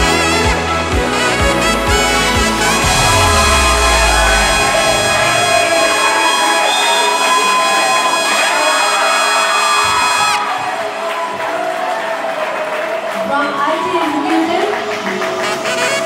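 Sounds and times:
loud walk-up music: 0:00.0 - 0:08.3
crowd cheering: 0:00.0 - 0:16.0.

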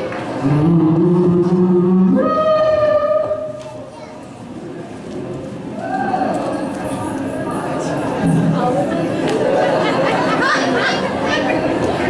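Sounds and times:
audience chatter in a hall: 0:00.0 - 0:12.0.

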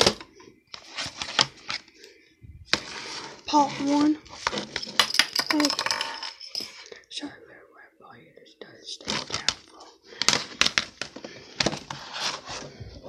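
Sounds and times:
plastic cases clicking and rubbing: 0:00.0 - 0:02.0, 0:09.0 - 0:12.8.

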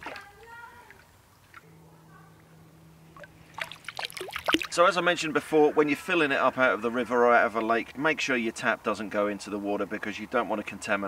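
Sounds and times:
glugging air bubbles: 0:03.2 - 0:04.8
water gurgling into container: 0:03.2 - 0:04.8
water splashing and pouring: 0:03.2 - 0:04.8.

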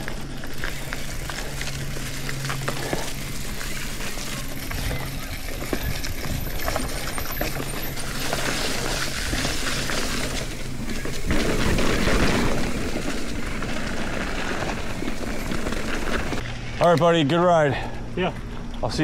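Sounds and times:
bike chain rattling: 0:00.0 - 0:17.0
bike tyres crunching leaves: 0:00.0 - 0:17.6
steady low hum: 0:00.0 - 0:19.0.

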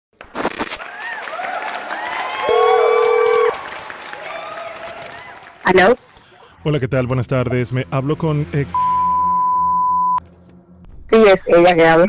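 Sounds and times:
loud steady beep: 0:08.8 - 0:10.2.

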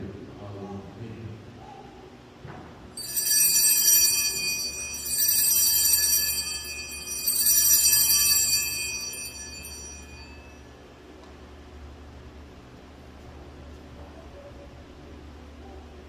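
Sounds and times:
altar bells jangling: 0:03.0 - 0:10.6.

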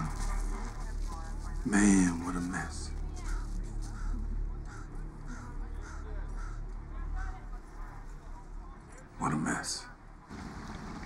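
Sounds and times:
crows cawing: 0:03.2 - 0:07.5.

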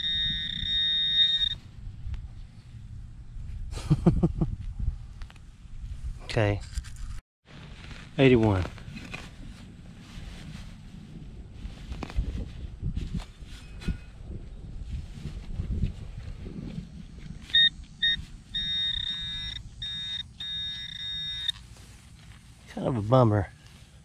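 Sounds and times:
metal detector beeps: 0:00.0 - 0:01.6, 0:17.4 - 0:21.6
metal detector continuous tone: 0:00.0 - 0:02.2, 0:17.0 - 0:23.9.

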